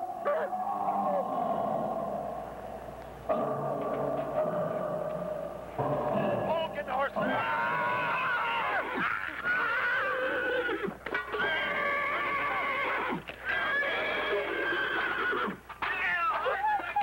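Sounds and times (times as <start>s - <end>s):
horses whinnying: 0.2s - 2.6s, 7.2s - 15.7s.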